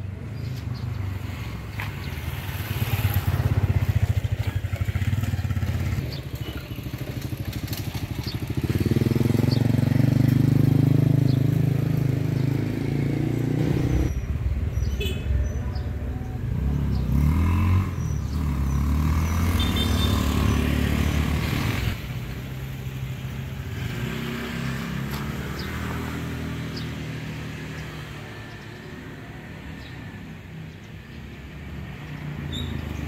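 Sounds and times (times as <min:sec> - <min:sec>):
motorcycles and cars passing: 0:00.0 - 0:33.0
traffic hum: 0:00.0 - 0:33.0.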